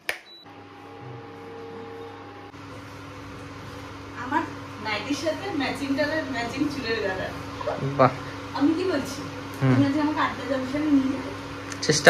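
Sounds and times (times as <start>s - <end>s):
cooktop electrical hum: 0.0s - 12.0s.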